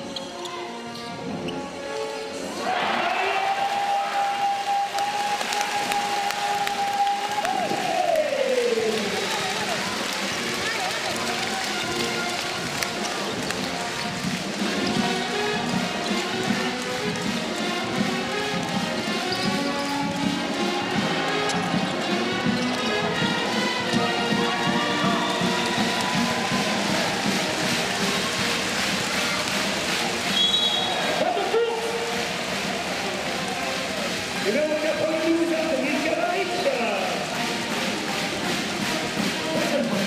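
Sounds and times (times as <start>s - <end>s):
arena crowd noise: 0.0s - 40.0s
music playing: 0.0s - 40.0s
referee's whistle: 30.3s - 31.1s.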